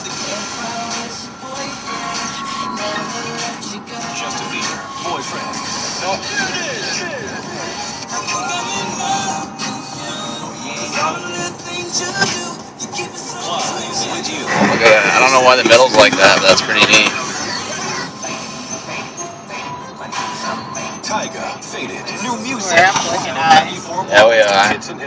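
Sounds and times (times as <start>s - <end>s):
car radio music with vocals: 0.0s - 25.0s
road noise inside car: 0.0s - 25.0s.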